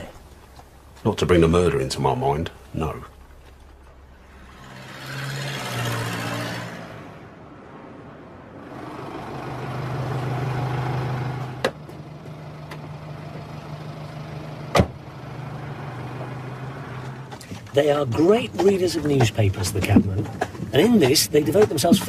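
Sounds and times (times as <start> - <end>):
vehicle passing: 2.8 - 19.6
engine running steadily: 8.6 - 22.0.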